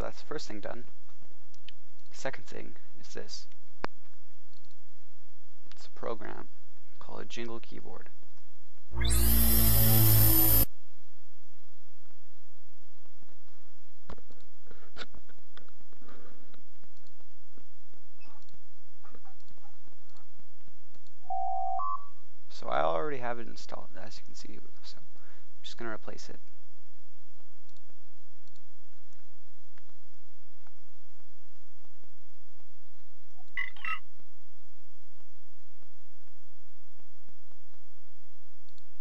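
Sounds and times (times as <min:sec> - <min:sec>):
low steady hum: 0:00.0 - 0:39.0
computer mouse clicks: 0:04.5 - 0:04.8, 0:19.3 - 0:20.3
error alert chime: 0:21.3 - 0:22.1.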